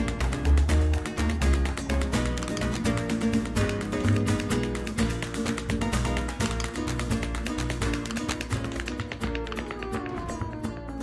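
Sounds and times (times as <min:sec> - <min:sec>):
dancers' heel taps: 0:00.0 - 0:11.0
flamenco guitar: 0:00.0 - 0:11.0.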